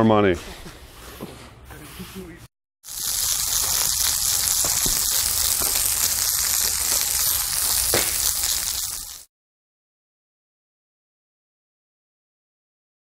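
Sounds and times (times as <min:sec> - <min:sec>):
push brooms sweeping sand on pavers: 0:00.5 - 0:09.3.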